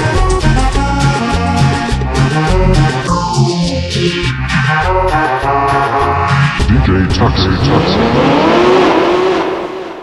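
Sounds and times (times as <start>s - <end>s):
car engine accelerating: 6.6s - 10.0s.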